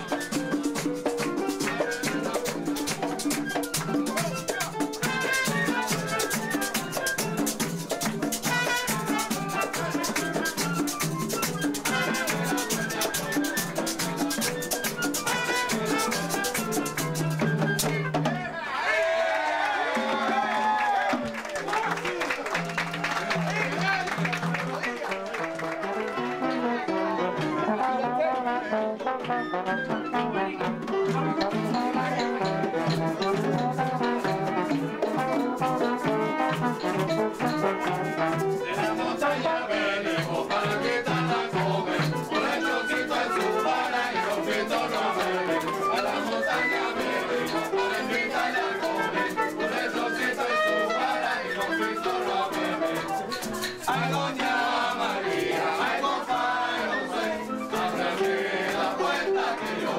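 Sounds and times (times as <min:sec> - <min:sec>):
trombone playing: 0:00.0 - 0:18.0, 0:22.0 - 0:59.9
group of voices singing: 0:00.0 - 0:18.2, 0:25.7 - 0:59.9
shakers: 0:00.0 - 0:18.2, 0:30.9 - 0:59.9
hand frame drums beating: 0:00.0 - 0:18.5, 0:21.1 - 0:25.0, 0:30.5 - 0:39.2.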